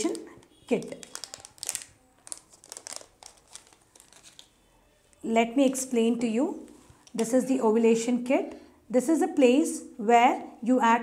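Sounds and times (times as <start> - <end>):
wrapper crinkling: 0.0 - 4.7.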